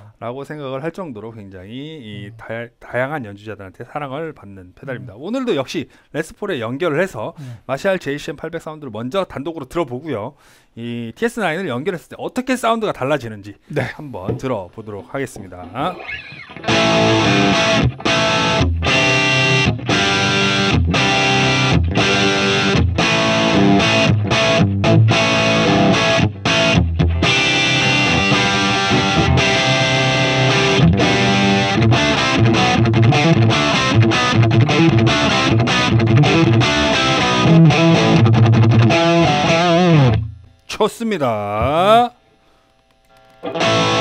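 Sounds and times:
electric guitar riff: 0:15.8 - 0:40.6, 0:43.2 - 0:44.0.

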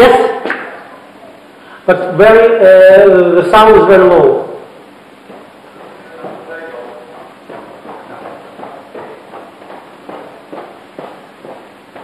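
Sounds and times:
footsteps on hard floor: 0:05.2 - 0:12.0.

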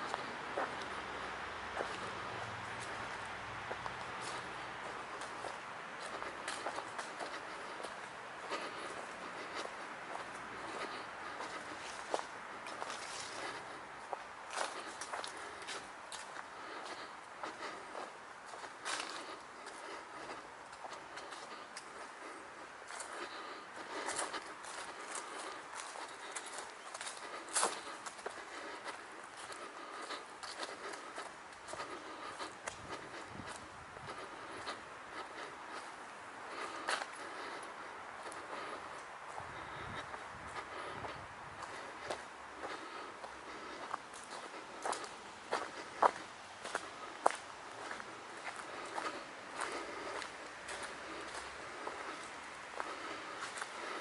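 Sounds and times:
footsteps on grass and leaves: 0:00.0 - 0:54.0.

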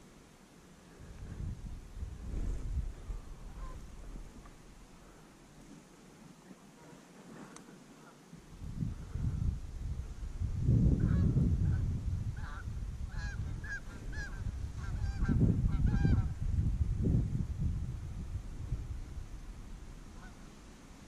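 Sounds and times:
wind buffeting microphone: 0:00.9 - 0:05.2, 0:08.5 - 0:20.5
geese honking: 0:03.5 - 0:03.9, 0:12.4 - 0:16.3, 0:20.2 - 0:20.5.

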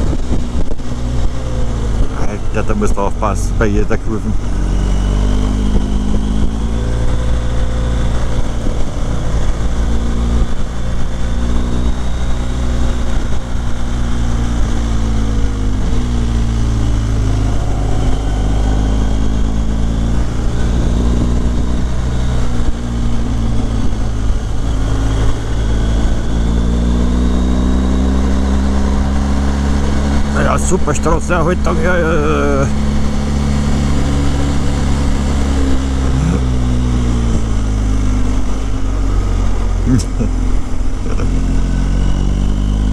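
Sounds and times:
motorcycle engine running: 0:00.0 - 0:42.9.

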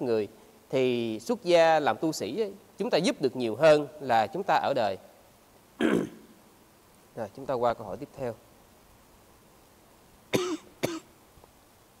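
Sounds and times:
man coughing: 0:05.8 - 0:06.3, 0:10.4 - 0:11.1.

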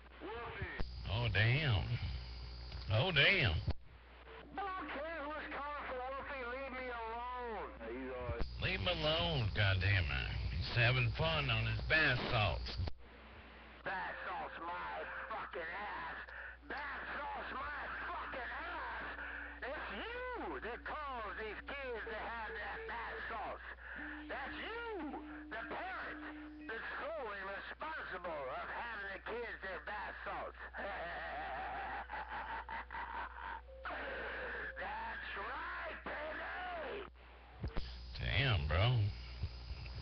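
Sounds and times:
radio whistles and warbles: 0:00.0 - 0:13.0, 0:13.8 - 0:31.0, 0:33.7 - 0:40.0
short steady radio tones: 0:00.0 - 0:31.0, 0:33.6 - 0:40.0.

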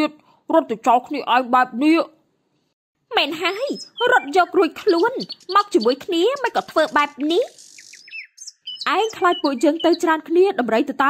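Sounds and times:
cartoon dialogue: 0:03.1 - 0:07.6, 0:08.8 - 0:11.0
high bird chirps: 0:03.1 - 0:11.0.

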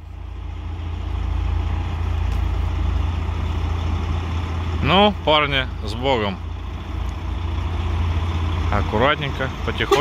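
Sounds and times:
diesel truck engines idling: 0:00.0 - 0:10.0.

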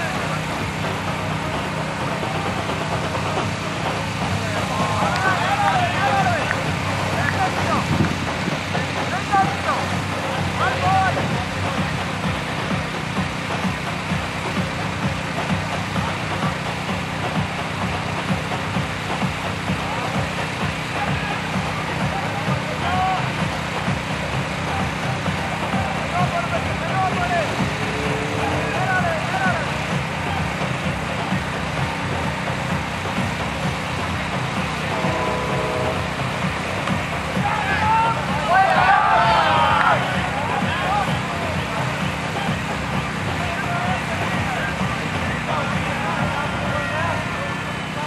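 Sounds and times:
low outdoor rumble: 0:00.0 - 0:48.0.

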